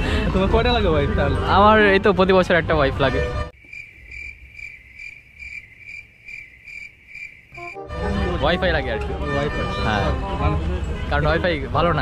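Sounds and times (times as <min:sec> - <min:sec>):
cricket chirping: 0:03.5 - 0:07.8.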